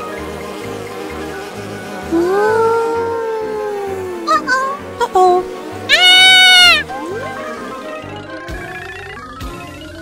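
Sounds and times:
background music: 0:00.0 - 0:10.0
child exclaiming: 0:04.2 - 0:06.9
high-pitched shriek: 0:05.9 - 0:06.8.

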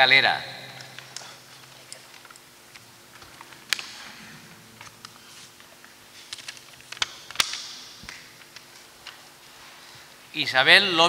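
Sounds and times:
paper rustling: 0:01.0 - 0:09.9.

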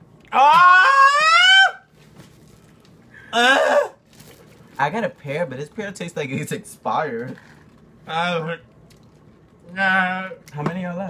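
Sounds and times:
person crying out: 0:00.3 - 0:01.8, 0:03.2 - 0:04.0.

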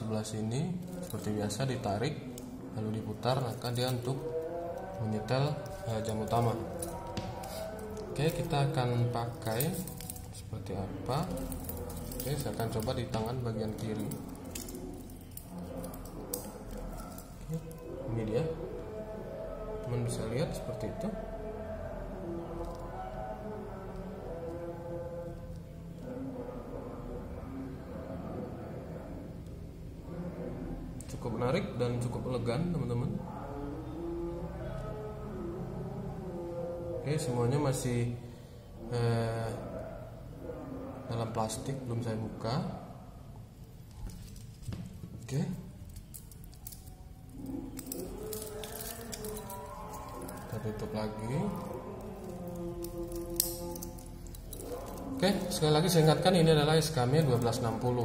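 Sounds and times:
wristwatch handling noise: 0:11.1 - 0:17.8, 0:43.9 - 0:45.0, 0:45.8 - 0:50.9, 0:51.5 - 0:55.6.

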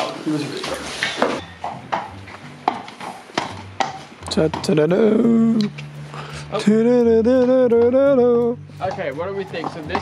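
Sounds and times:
footsteps on hard ground: 0:00.0 - 0:05.0, 0:08.6 - 0:10.0
horse hooves on hard ground: 0:00.0 - 0:05.1, 0:08.7 - 0:10.0.

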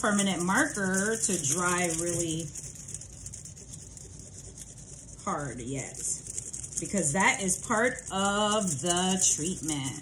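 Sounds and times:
marker scratching on foil: 0:00.0 - 0:10.0.

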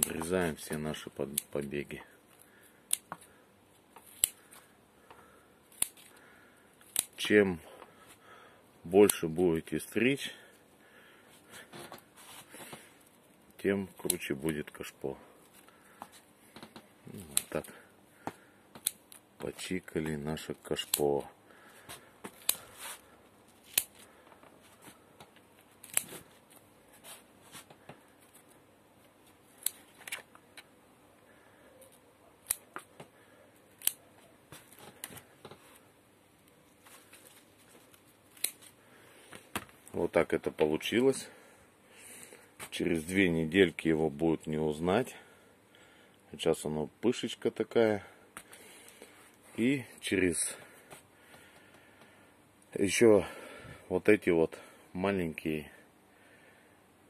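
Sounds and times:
scissors snipping: 0:02.9 - 0:03.3, 0:04.0 - 0:04.5, 0:05.7 - 0:06.2, 0:06.8 - 0:07.3, 0:14.0 - 0:14.3, 0:17.1 - 0:17.7, 0:18.8 - 0:19.2, 0:22.3 - 0:22.7, 0:23.6 - 0:24.1, 0:25.8 - 0:26.2, 0:29.5 - 0:30.7, 0:31.8 - 0:32.9, 0:33.7 - 0:34.1, 0:38.3 - 0:38.7.

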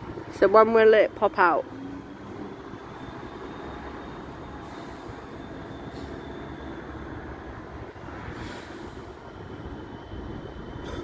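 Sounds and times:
diesel locomotive rumbling: 0:00.0 - 0:11.0
station background noise: 0:00.0 - 0:11.0.

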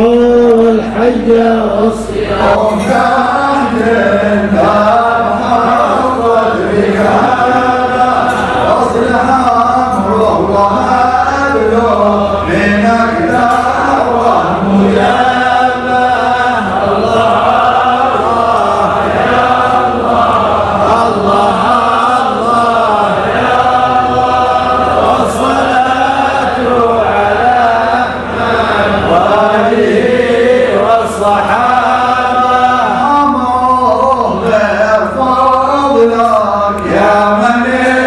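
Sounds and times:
men chanting in unison: 0:00.0 - 0:38.0.

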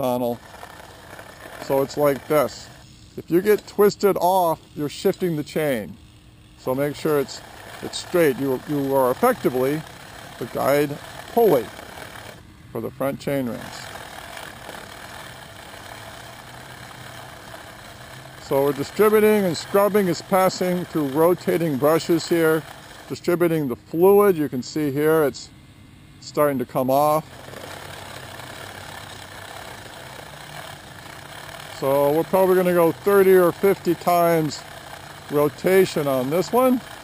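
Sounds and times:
brushes scrubbing bicycle chain: 0:00.0 - 0:06.0, 0:06.6 - 0:23.8, 0:26.6 - 0:37.0.

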